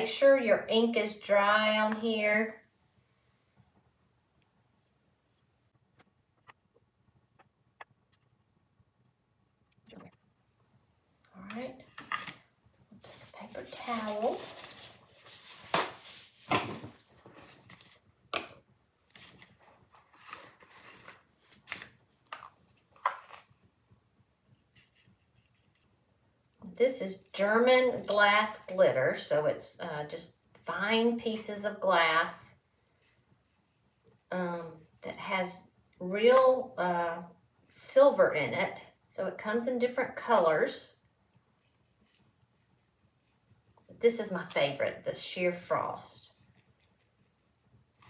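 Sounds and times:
paper rustling and crinkling: 13.0s - 23.6s.

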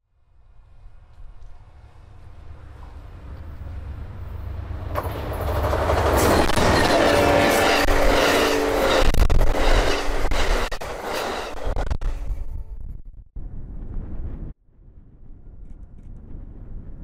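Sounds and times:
diesel locomotive engine drone: 0.0s - 17.0s
train wheels clicking over rail joints: 4.9s - 11.8s.

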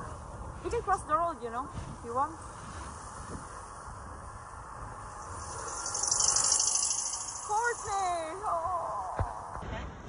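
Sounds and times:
car passing with loud hiss: 1.8s - 8.6s.

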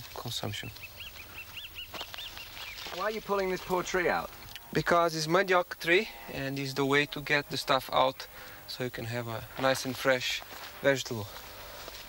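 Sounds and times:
bird chirping: 0.4s - 4.7s.

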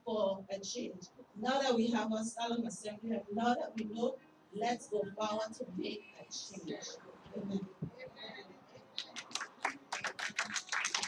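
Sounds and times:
congregation applauding: 9.0s - 11.0s.

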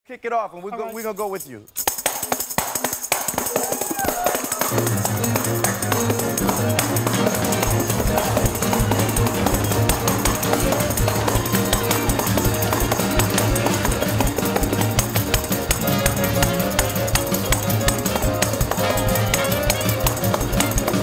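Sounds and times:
tambourine shaken and struck: 0.9s - 21.0s
live band playing: 1.8s - 21.0s.

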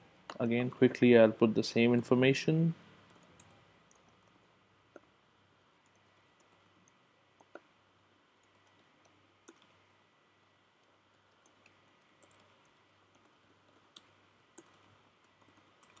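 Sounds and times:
keyboard and mouse clicks: 3.1s - 4.3s, 5.8s - 7.7s, 8.4s - 9.8s, 10.8s - 16.0s.

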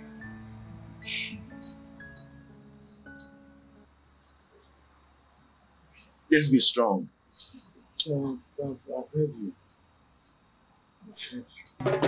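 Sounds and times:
soft background music: 0.0s - 4.5s
cricket chirping: 0.0s - 11.9s.

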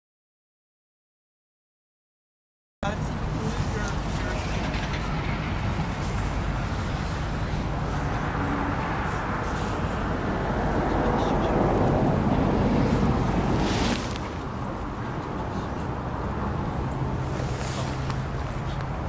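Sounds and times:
wind rumbling on microphone: 2.9s - 19.0s.

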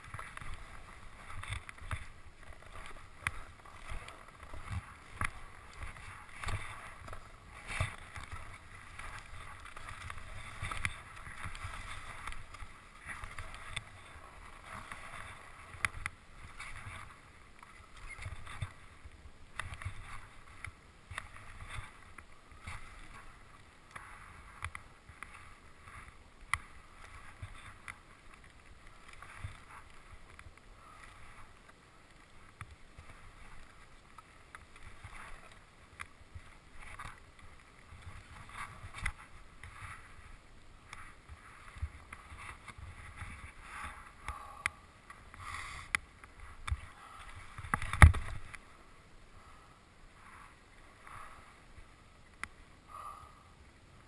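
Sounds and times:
skis sliding over snow: 0.0s - 52.8s.

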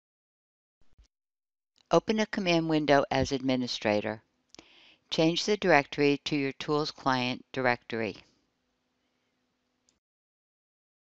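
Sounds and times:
narrator speaking: 1.9s - 4.2s, 5.1s - 8.2s.

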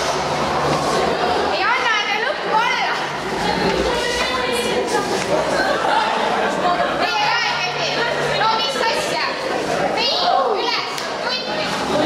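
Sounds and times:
overlapping voices: 0.0s - 10.1s
teenagers shouting and shrieking: 0.0s - 12.0s.

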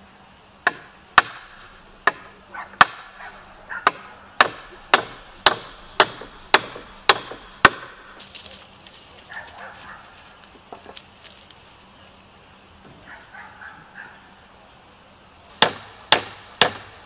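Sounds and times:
hammer driving nails into wood: 3.8s - 8.0s.

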